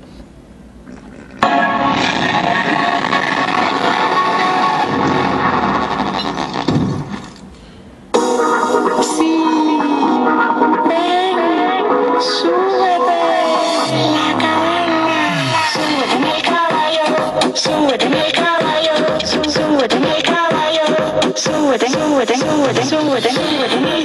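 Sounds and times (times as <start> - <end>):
music from small speaker: 1.4 - 6.4, 8.2 - 24.0
song with sung melody: 8.6 - 24.0.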